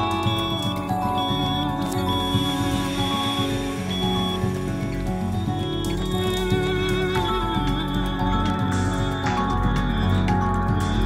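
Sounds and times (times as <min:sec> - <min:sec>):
sustained chords music: 0:00.0 - 0:11.0.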